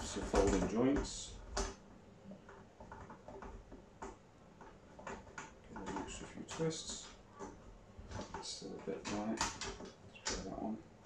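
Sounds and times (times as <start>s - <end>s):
plastic parts clicking and tapping: 2.4s - 10.6s.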